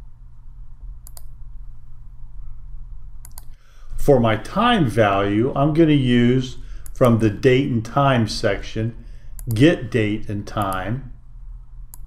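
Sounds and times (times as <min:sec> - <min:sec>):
low steady hum: 0:00.0 - 0:12.0
computer mouse clicks: 0:01.0 - 0:01.4, 0:03.2 - 0:03.6.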